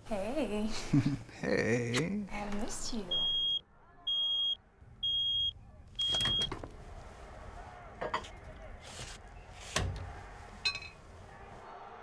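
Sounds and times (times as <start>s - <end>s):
microwave oven beeping: 3.2s - 6.6s.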